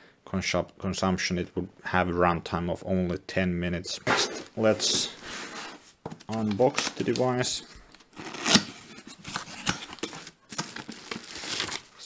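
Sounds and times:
cardboard and packaging rustling: 4.1 - 12.0.

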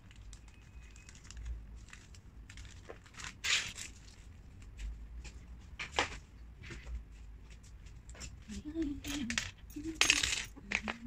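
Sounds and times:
woman speaking softly: 8.5 - 11.0
small hard pieces clinking: 9.1 - 11.0.

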